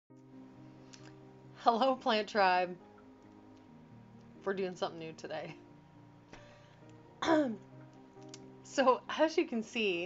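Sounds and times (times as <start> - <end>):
soft background music: 0.1 - 10.0
woman clearing her throat: 7.2 - 7.6.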